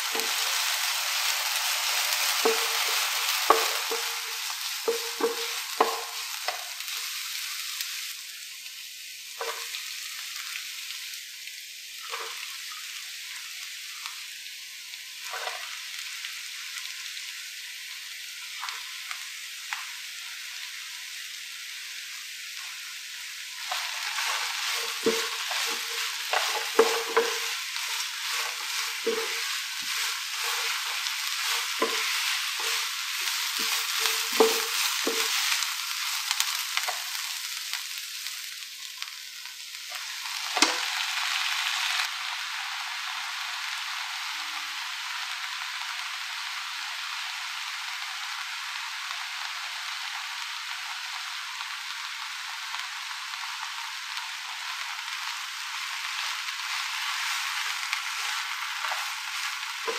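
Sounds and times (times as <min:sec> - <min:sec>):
spatula scraping a pan: 0:00.0 - 0:06.8, 0:23.6 - 0:37.2, 0:56.6 - 0:59.9
noodles sizzling in hot oil: 0:00.0 - 0:59.9.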